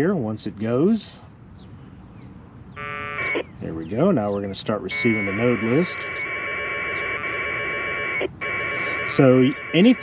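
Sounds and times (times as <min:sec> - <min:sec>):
packet radio data tones buzz: 0:02.8 - 0:03.5, 0:04.8 - 0:10.0.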